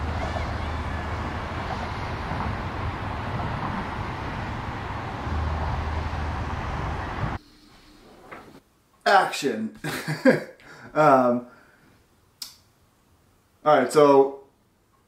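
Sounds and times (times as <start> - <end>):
low engine hum: 0.0 - 7.4
street traffic rush: 0.0 - 7.4.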